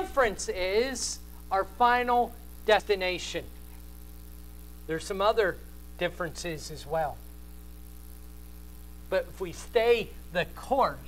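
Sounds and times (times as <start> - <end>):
low electrical mains hum: 0.0 - 11.0
man's voice: 9.1 - 11.0.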